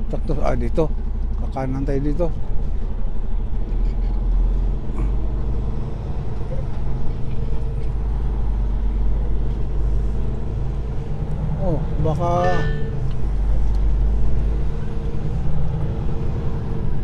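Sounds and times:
diesel truck engine humming: 0.0s - 17.0s.

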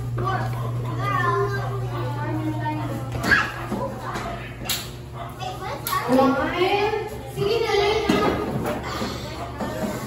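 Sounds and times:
children chattering and calling out: 0.0s - 10.0s
steady low hum: 0.0s - 10.0s.

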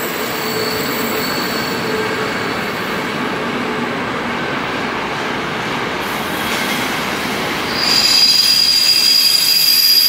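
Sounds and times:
train wheels squealing on rails: 0.0s - 3.2s, 6.0s - 10.0s.

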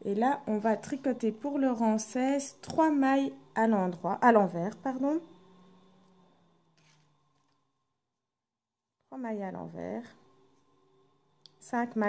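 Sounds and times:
faint low hum: 0.0s - 8.2s, 9.0s - 12.0s.

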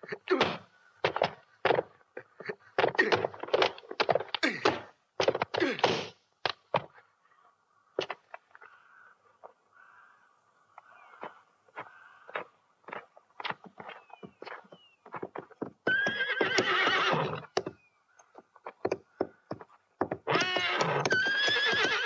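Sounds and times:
sharp knocks and thuds: 0.3s - 7.0s, 17.6s - 21.2s
horse whinnying: 15.8s - 17.6s, 20.2s - 22.0s.

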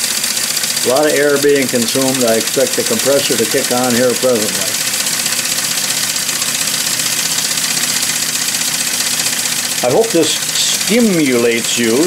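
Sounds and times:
model steam engines chattering: 0.0s - 12.0s.

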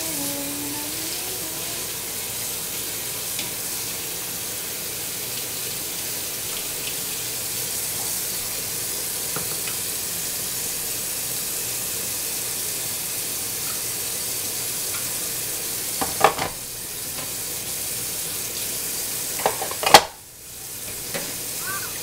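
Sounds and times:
dishes clattering: 16.0s - 16.6s, 19.4s - 20.2s
tap running into sink: 16.0s - 17.4s.

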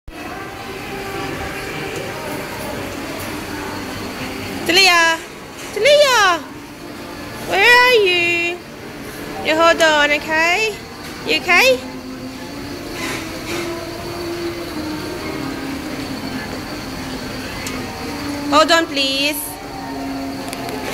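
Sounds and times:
carousel mechanical rumble: 0.1s - 20.9s.

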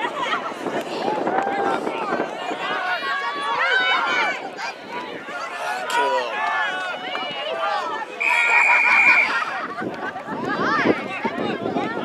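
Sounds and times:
voices shouting and calling: 0.2s - 12.0s.

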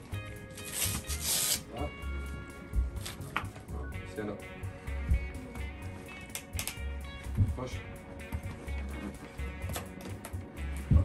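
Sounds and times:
background music with a beat: 0.0s - 11.0s.

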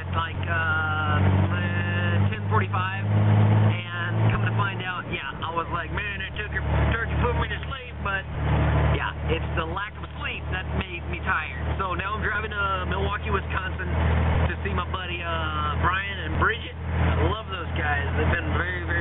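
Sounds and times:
man talking: 0.0s - 3.1s, 3.7s - 8.3s, 8.9s - 19.0s
car engine drone and road noise: 0.0s - 19.0s.

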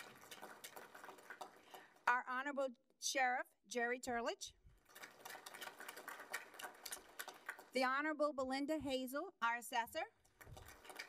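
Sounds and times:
light applause: 4.9s - 7.7s.

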